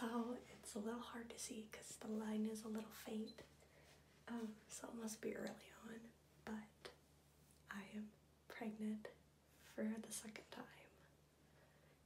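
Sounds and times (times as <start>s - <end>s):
woman talking softly: 0.0s - 3.5s, 4.3s - 7.0s, 7.7s - 11.1s.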